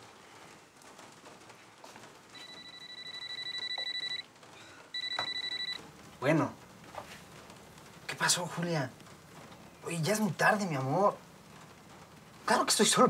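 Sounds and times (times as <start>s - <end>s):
phone ringing with warbling ringtone: 2.4s - 4.3s, 5.0s - 5.8s.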